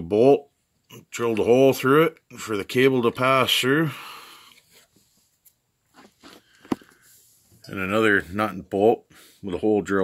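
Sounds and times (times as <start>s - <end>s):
faint breath: 3.9s - 5.2s, 6.3s - 7.6s.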